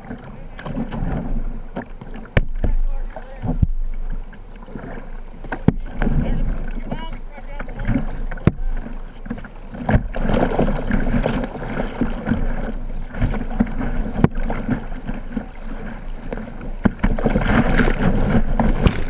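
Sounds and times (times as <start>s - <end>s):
paddle strokes in water: 0.0s - 19.0s
river water rushing and splashing: 0.0s - 19.0s.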